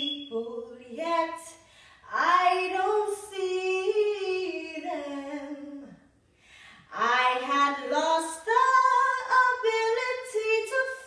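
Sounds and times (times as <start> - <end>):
girl singing a cappella: 0.0 - 6.0, 6.9 - 11.0.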